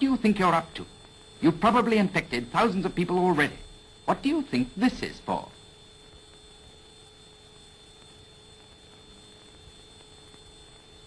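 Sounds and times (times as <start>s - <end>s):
film soundtrack hiss: 0.0s - 11.0s
steady hum: 0.0s - 11.0s
thin high whine: 0.0s - 11.0s.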